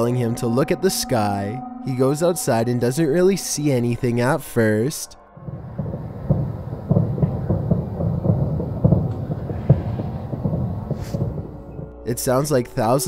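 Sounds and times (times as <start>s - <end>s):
dense crackle of bangs and pops: 5.4s - 12.1s.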